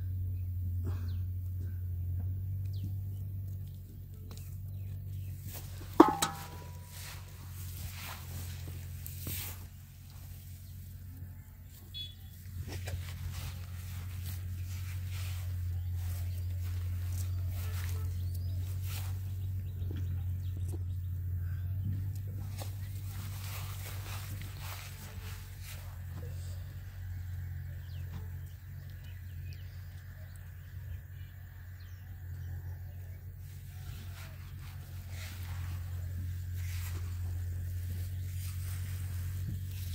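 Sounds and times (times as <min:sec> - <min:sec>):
steady low rumble: 0:00.0 - 0:39.9.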